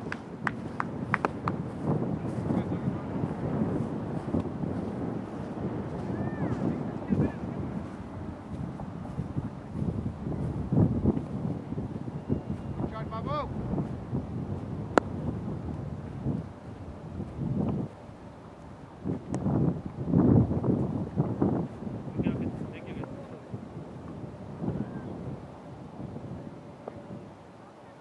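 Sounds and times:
wind buffeting microphone: 0.0 - 27.6.

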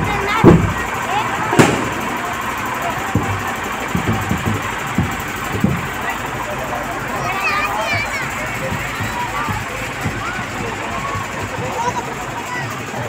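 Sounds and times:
low thumps: 0.0 - 12.3
crowd chatter: 0.0 - 13.0
people shouting: 0.0 - 13.0.

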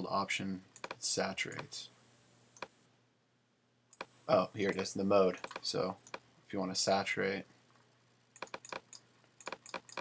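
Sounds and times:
keyboard and mouse clicks: 0.8 - 1.7, 3.9 - 6.2, 8.4 - 10.0.

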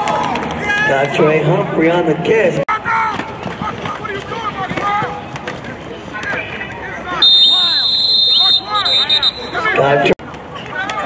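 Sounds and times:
spectators shouting: 2.7 - 11.0
referee's whistle blasts: 7.2 - 9.8.

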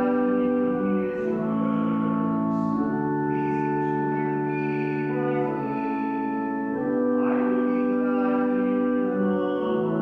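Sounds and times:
church organ chords: 0.0 - 10.0.

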